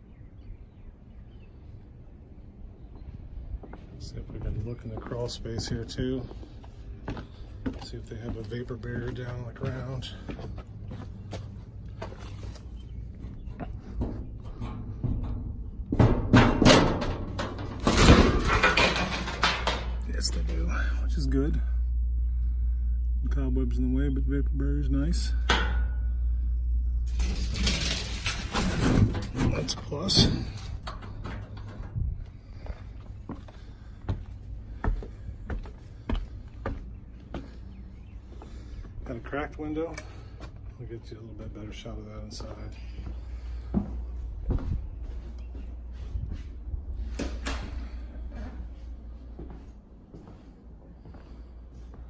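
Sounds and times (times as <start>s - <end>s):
steady low rumble: 0.0s - 52.0s
footsteps on wooden steps: 3.6s - 14.3s, 32.2s - 39.0s, 42.4s - 46.5s
metal door scraping and clattering: 16.0s - 20.0s, 27.1s - 32.0s.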